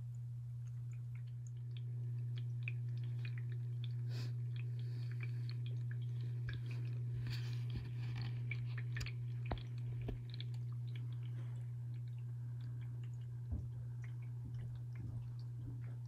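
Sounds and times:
water pump humming: 0:00.0 - 0:16.0.

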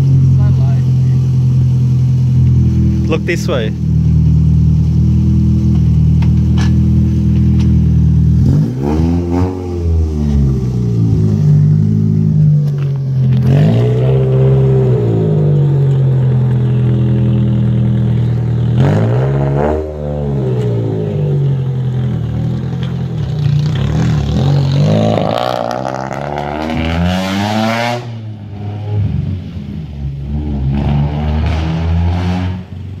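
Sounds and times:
car engine revving: 0:00.0 - 0:33.0.

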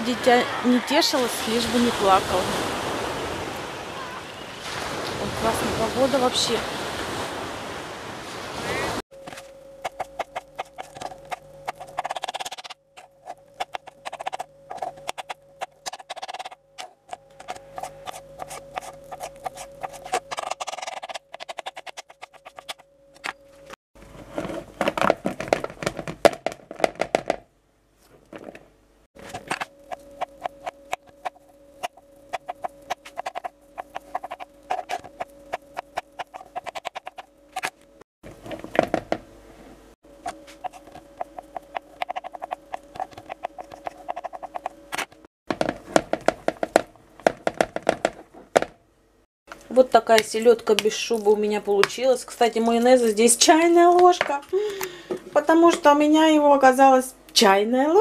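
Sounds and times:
sea surf: 0:00.0 - 0:09.0
knife chopping on plastic board: 0:45.5 - 0:48.8.

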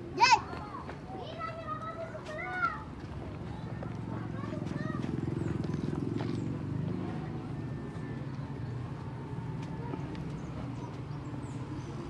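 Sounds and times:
people talking: 0:00.2 - 0:06.0.

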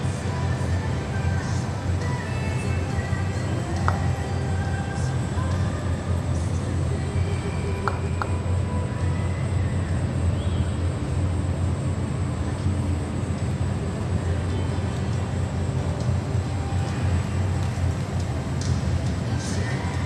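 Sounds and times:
low rumbling noise: 0:00.0 - 0:20.0.

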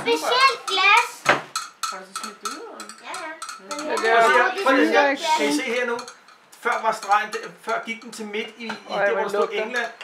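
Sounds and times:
thermometer clinking against glass flask: 0:05.7 - 0:08.4.

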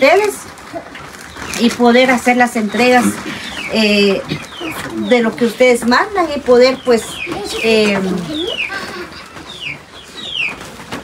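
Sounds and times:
bird chirping: 0:01.2 - 0:11.0.

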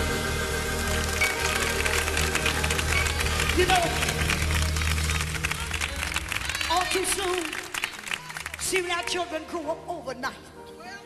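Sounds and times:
live gospel band music: 0:00.0 - 0:05.2.

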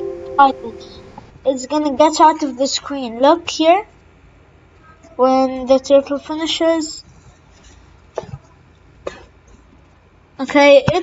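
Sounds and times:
person coughing quietly: 0:09.0 - 0:09.4.

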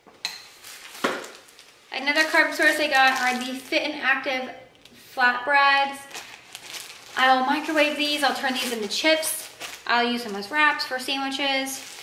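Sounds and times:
plastic bag clattering and rustling: 0:00.5 - 0:03.8, 0:06.1 - 0:10.6, 0:11.6 - 0:12.0.

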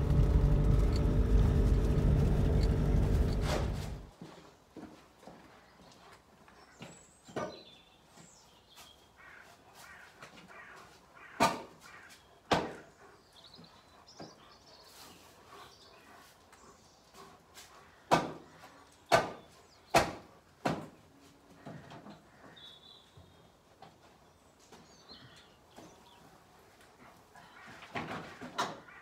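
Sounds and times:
birds chirping: 0:00.0 - 0:04.1, 0:05.2 - 0:29.0.

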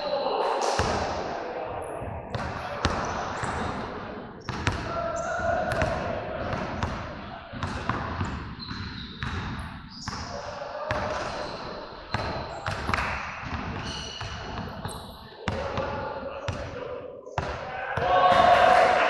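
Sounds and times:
people's voices: 0:00.0 - 0:19.0.

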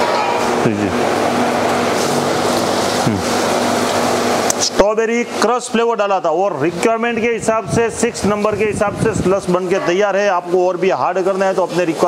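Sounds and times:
loud steady background noise: 0:00.0 - 0:12.0
person speaking: 0:03.0 - 0:03.4.

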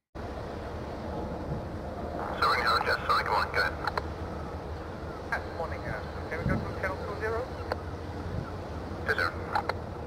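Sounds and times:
steady outdoor rumble: 0:00.2 - 0:10.0
people talking: 0:02.3 - 0:03.9, 0:05.3 - 0:07.5, 0:09.1 - 0:09.5.

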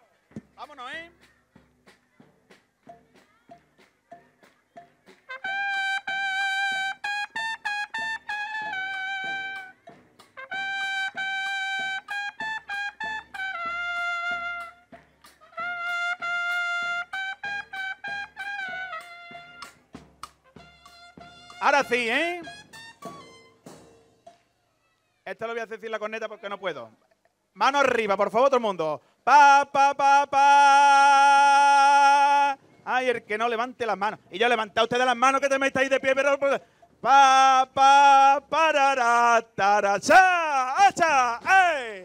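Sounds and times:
trumpet melody: 0:05.2 - 0:24.3
steady bass drum beat: 0:16.2 - 0:24.2.

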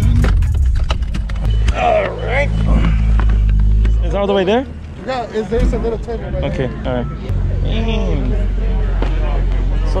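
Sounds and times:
car engine rumble: 0:00.0 - 0:10.0
voices: 0:01.5 - 0:10.0.

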